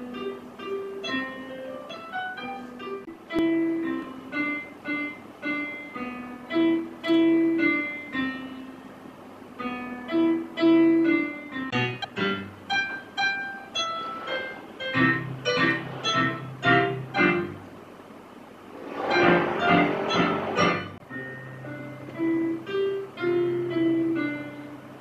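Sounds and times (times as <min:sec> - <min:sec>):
electronic keyboard melody: 0:00.0 - 0:09.0, 0:09.6 - 0:17.7, 0:18.9 - 0:25.0.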